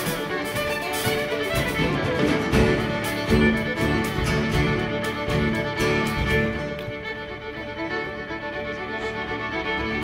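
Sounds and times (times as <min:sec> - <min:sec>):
drums: 0:00.0 - 0:07.0
acoustic guitar: 0:00.0 - 0:07.1
fiddles bowing: 0:00.0 - 0:10.0.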